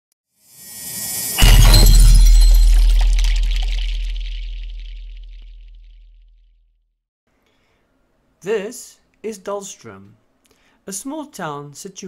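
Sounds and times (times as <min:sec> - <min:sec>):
glassy shattering sparkle: 0:00.5 - 0:05.8
deep boom: 0:01.4 - 0:06.0.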